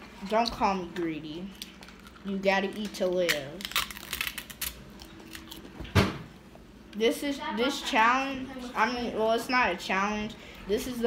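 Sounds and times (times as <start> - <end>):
crunchy food being bitten: 3.6 - 5.7.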